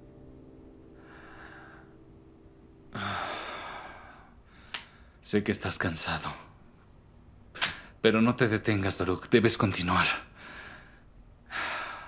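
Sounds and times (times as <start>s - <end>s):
man sighing: 2.9s - 4.8s.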